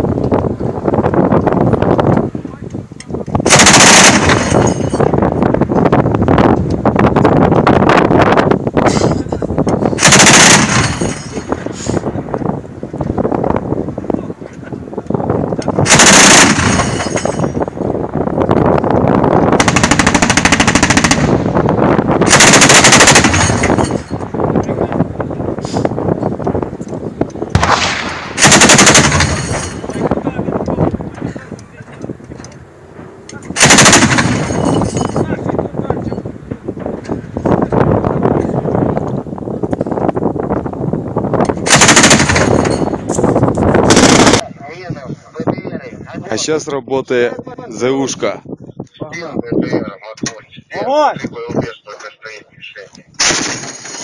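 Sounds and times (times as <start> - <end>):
autocannon rapid fire bursts: 3.4 - 5.0, 9.9 - 11.4, 15.8 - 17.2, 19.5 - 24.1, 27.5 - 29.9, 33.6 - 34.9, 41.6 - 42.9, 43.8 - 44.4
echoing rumble: 15.8 - 25.6, 26.6 - 31.4.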